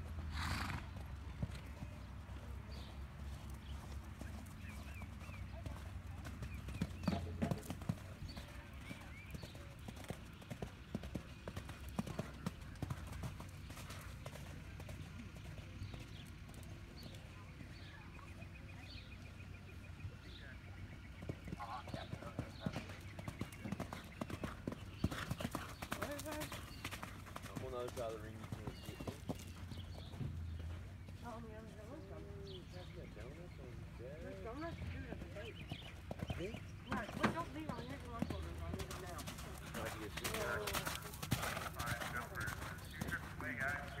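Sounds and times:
horse hoofbeats on sand: 0:01.3 - 0:17.9, 0:21.2 - 0:32.8, 0:34.5 - 0:44.0
people talking: 0:26.0 - 0:26.5, 0:31.2 - 0:35.7, 0:36.3 - 0:44.0.

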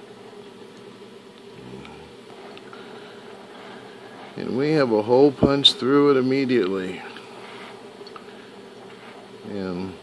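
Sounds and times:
torch flame buzzing hiss: 0:00.0 - 0:10.0.

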